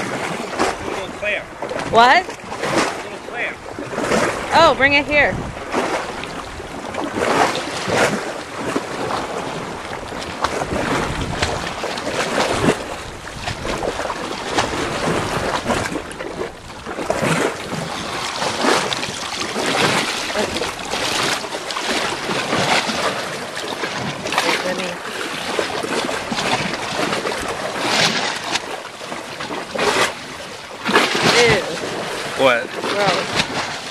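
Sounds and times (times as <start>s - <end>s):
wind buffeting microphone: 0.0s - 28.7s
seawater splashing and sloshing: 0.0s - 33.9s.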